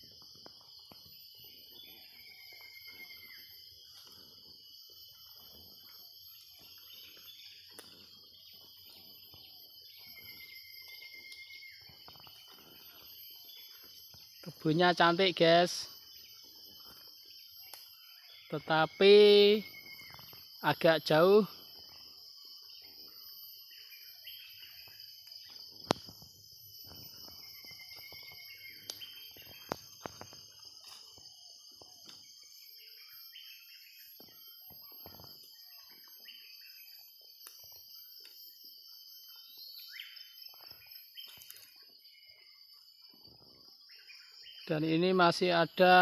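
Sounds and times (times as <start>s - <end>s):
bird chirps: 0.0s - 46.0s
insects droning: 0.0s - 46.0s.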